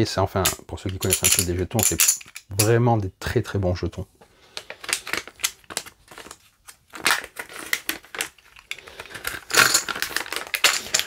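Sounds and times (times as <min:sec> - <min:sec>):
foil packet crinkling: 0:04.5 - 0:11.0.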